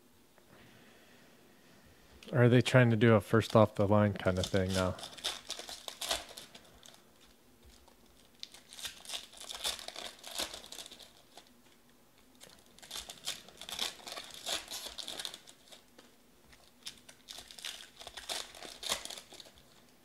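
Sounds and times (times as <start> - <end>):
wrappers crinkling and tearing: 3.4 - 20.0.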